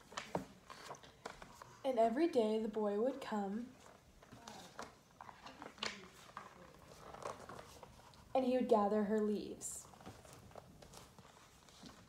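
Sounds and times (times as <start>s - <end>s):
book pages clicking and rustling: 0.0s - 1.8s, 3.8s - 8.3s, 9.8s - 12.0s.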